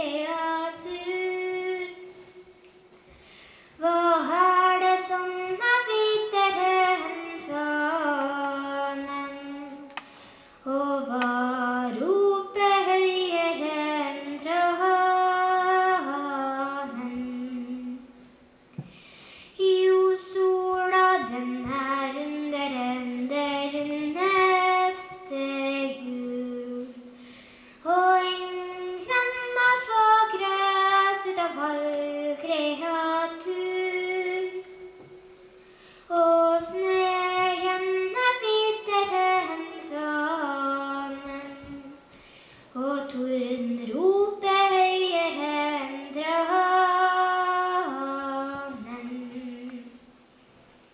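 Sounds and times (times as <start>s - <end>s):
girl singing unaccompanied: 0.0s - 2.9s, 3.7s - 18.4s, 19.5s - 50.3s.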